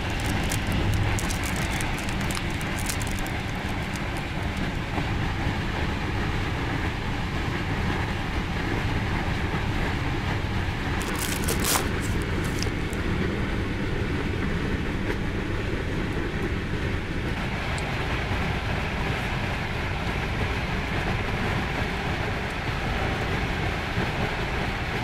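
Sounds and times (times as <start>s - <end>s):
train rumbling and rolling: 0.0s - 25.0s.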